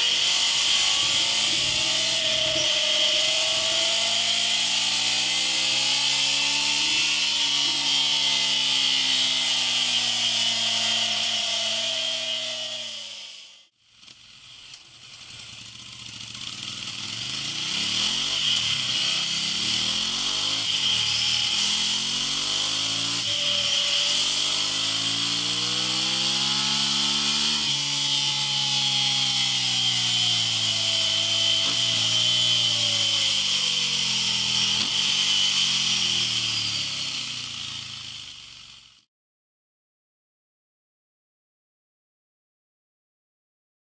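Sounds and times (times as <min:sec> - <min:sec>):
motorcycle engine revving: 0:00.0 - 0:39.0.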